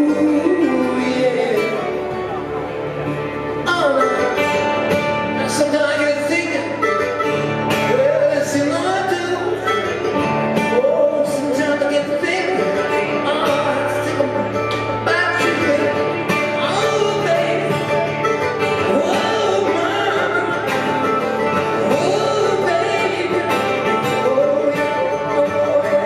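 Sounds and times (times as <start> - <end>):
man singing wordless phrases: 0.0 - 2.1, 5.4 - 7.1, 7.8 - 18.2, 18.8 - 20.9, 21.7 - 26.0
mandolin and guitar playing: 0.0 - 26.0.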